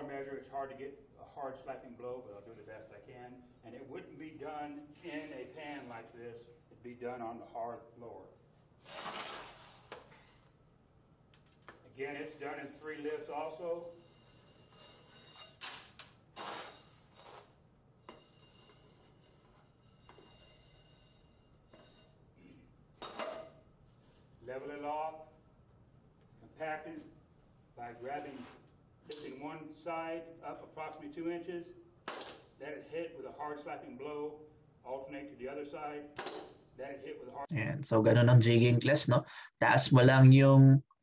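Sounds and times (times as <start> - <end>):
metal scoop scraping gravel: 8.8 - 10.5, 12.0 - 22.2
man speaking: 36.9 - 40.8.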